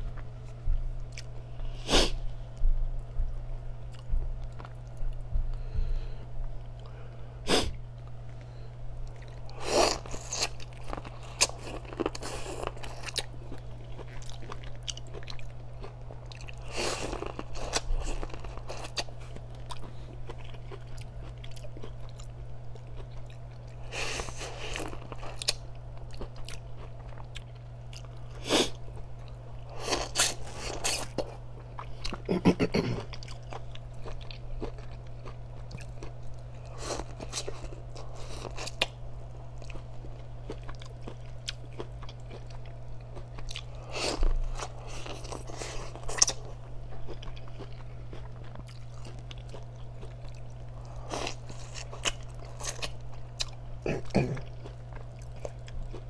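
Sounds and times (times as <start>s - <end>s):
biting and chewing corn: 9.0s - 28.2s, 28.9s - 56.0s.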